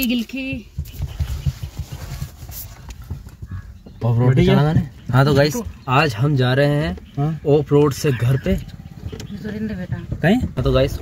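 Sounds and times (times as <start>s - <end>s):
car ride rumble: 0.0s - 11.0s.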